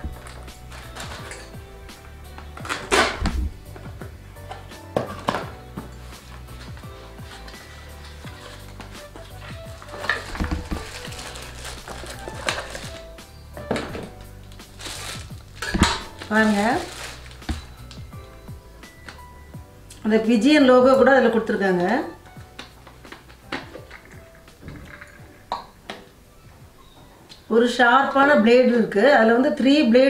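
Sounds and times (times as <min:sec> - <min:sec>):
plastic bag rustling: 0:00.0 - 0:03.9, 0:04.5 - 0:19.3
quiet background music: 0:00.0 - 0:30.0
cardboard box being handled: 0:09.8 - 0:13.0.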